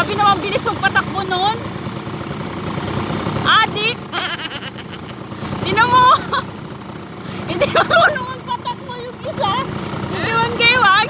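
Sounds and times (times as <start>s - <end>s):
off-road vehicle engine idling: 0.0s - 11.0s.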